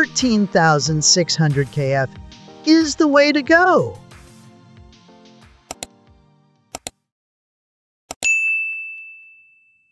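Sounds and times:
mouse click sound effects: 0:05.7 - 0:05.9, 0:06.7 - 0:07.0
notification bell ding: 0:08.2 - 0:09.9.

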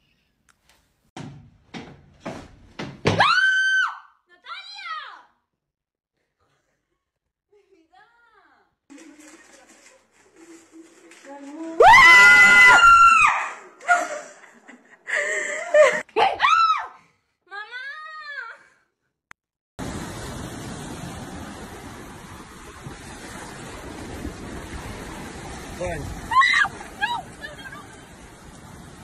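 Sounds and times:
woman screaming: 0:03.2 - 0:05.2, 0:11.8 - 0:13.7, 0:16.2 - 0:17.0, 0:26.3 - 0:27.9
surf rushing: 0:19.8 - 0:29.0
wind: 0:19.8 - 0:29.0.

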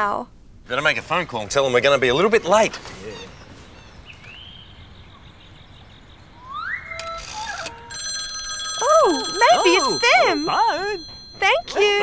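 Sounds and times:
telephone ringing: 0:07.0 - 0:12.0.

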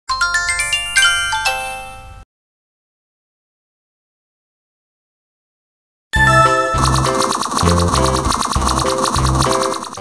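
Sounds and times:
chiming jingle: 0:00.1 - 0:02.2, 0:06.2 - 0:07.2.

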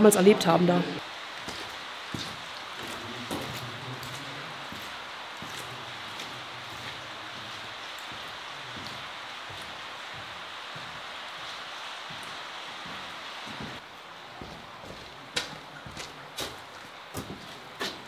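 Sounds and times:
rainwater rushing through tunnel: 0:00.0 - 0:18.0
footsteps on wet floor: 0:01.3 - 0:18.0.

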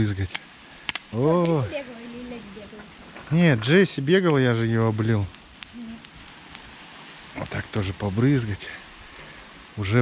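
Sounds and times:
garden hose spray hiss: 0:00.0 - 0:10.0.

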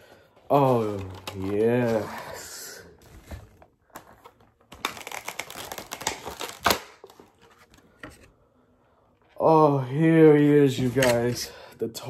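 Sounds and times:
plastic packaging crinkling: 0:00.5 - 0:07.8.

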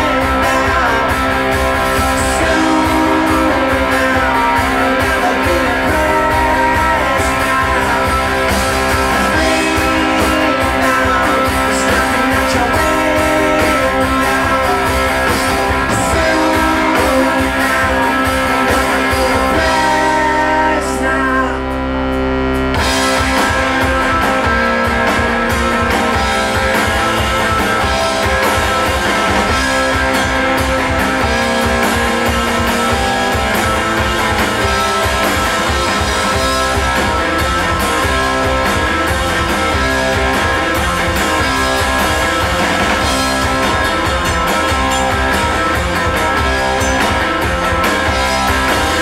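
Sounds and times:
bass guitar: 0:00.0 - 0:49.0
electric guitar: 0:00.0 - 0:49.0
live rock band playing: 0:00.0 - 0:49.0
drum and cymbal hits: 0:22.6 - 0:49.0.

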